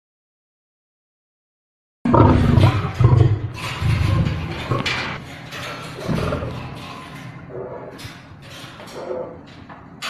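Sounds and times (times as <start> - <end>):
lion growling: 2.1 - 5.2, 6.0 - 6.8.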